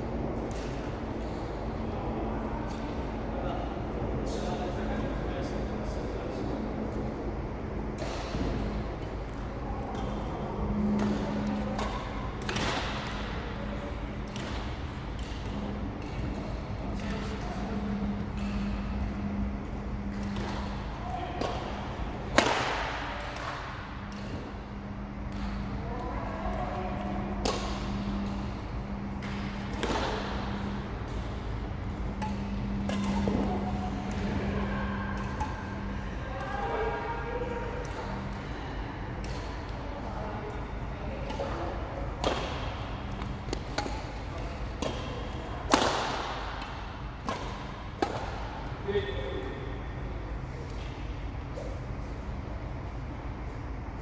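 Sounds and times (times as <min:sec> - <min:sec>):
steady low hum: 0:00.0 - 0:54.0
rackets striking shuttlecock: 0:09.9 - 0:13.6, 0:14.2 - 0:36.4, 0:41.2 - 0:48.6.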